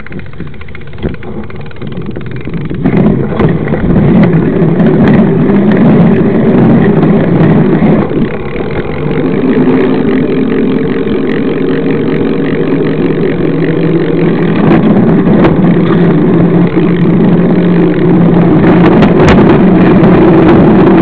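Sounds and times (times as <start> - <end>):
road rumble: 0.0 - 21.0
rushing wind: 0.0 - 21.0
steady drone: 0.0 - 21.0.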